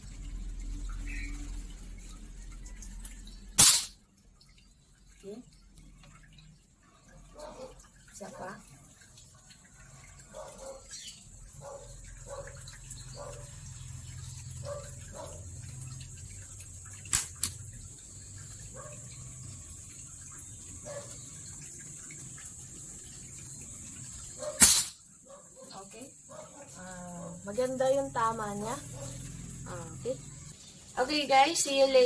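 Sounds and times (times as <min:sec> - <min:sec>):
air rifle shot: 0:03.6 - 0:04.0, 0:24.6 - 0:25.0.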